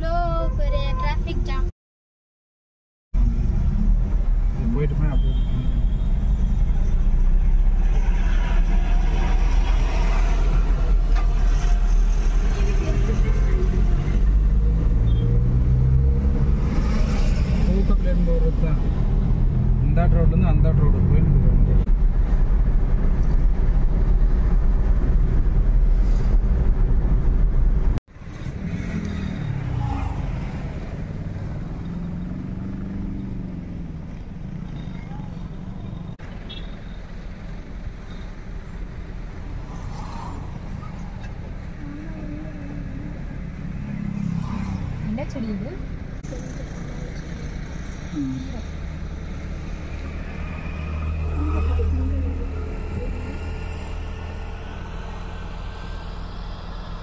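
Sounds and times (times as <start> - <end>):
engine and road rumble: 0.0 - 1.7, 3.1 - 57.0
people talking: 0.0 - 1.7, 4.6 - 5.8, 17.7 - 19.0, 19.8 - 21.9, 41.8 - 43.4, 45.0 - 47.3, 48.2 - 48.7, 51.3 - 53.6.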